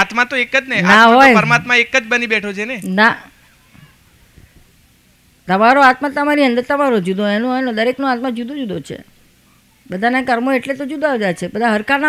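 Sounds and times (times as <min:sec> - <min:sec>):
faint background noise: 0:00.0 - 0:12.0
woman speaking: 0:02.8 - 0:04.0, 0:05.4 - 0:09.2, 0:09.8 - 0:12.0.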